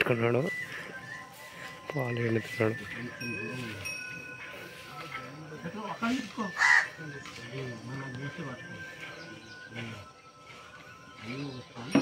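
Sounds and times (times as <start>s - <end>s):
crow cawing: 6.6s - 7.0s.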